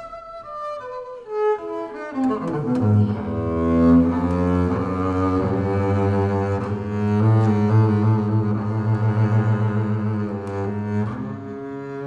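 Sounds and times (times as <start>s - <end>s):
bowed double bass: 0.0s - 12.0s.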